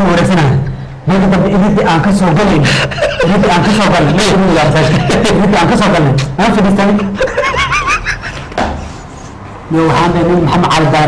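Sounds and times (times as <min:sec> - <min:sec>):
man talking: 0:00.0 - 0:07.4, 0:09.7 - 0:11.0
man chuckling: 0:02.6 - 0:05.6, 0:06.8 - 0:08.6.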